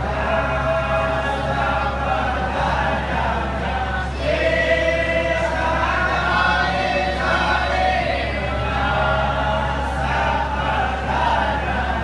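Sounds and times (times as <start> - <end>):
group singing a hymn: 0.0 - 12.0
steady low hum: 0.0 - 12.0.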